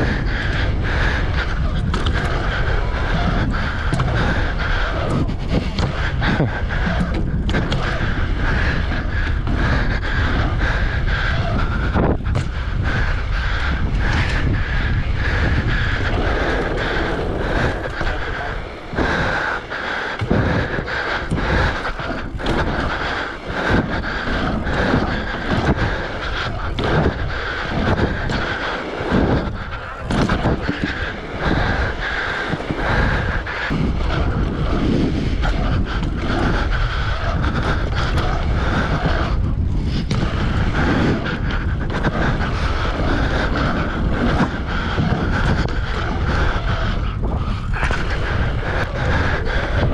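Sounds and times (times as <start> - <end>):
bike tyre noise: 0.0 - 49.9
wind rumbling on microphone: 0.0 - 49.9.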